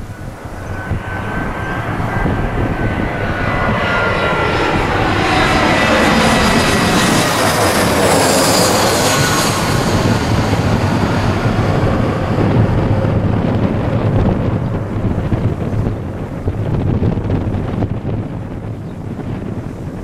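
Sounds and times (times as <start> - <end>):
high fan whine: 0.0 - 20.0
jet airliner passing overhead: 0.0 - 20.0.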